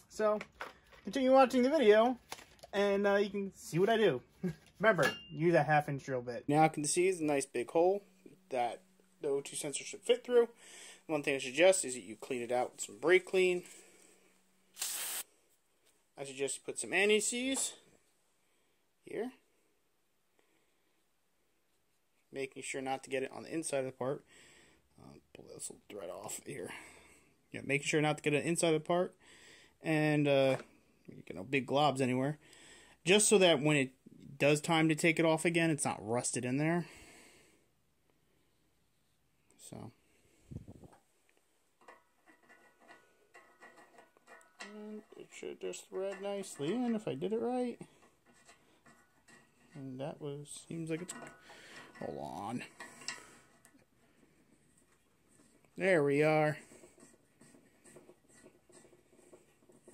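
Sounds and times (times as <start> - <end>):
aerosol can spraying: 14.8 - 15.3.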